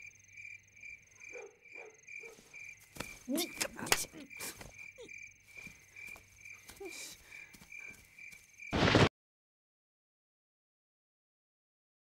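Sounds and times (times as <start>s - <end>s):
crickets chirping: 0.0s - 9.1s.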